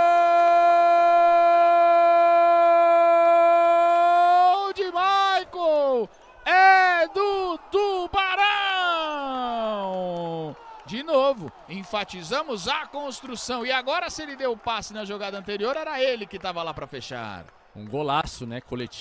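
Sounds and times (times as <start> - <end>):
man shouting goal cry: 0.0 - 14.7.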